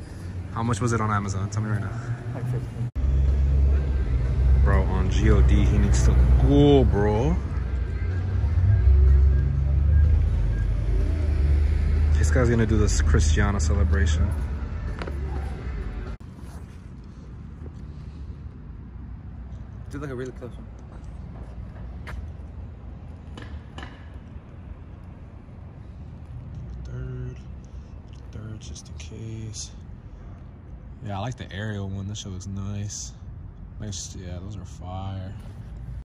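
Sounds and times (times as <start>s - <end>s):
road traffic rumble: 0.0s - 36.0s.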